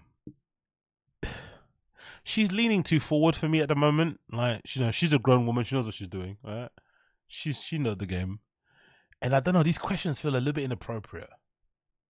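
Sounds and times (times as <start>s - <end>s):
man sighing: 1.2s - 1.6s.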